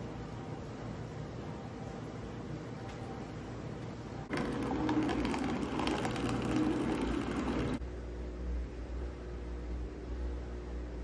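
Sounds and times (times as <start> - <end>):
coffee maker buzzing and humming: 4.2 - 8.0.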